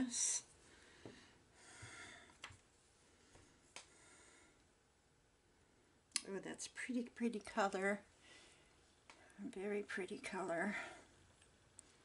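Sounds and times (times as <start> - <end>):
faint breath: 0.6 - 2.4, 3.1 - 4.7, 8.2 - 9.4
small faint clicks: 3.3 - 4.0, 11.3 - 12.0.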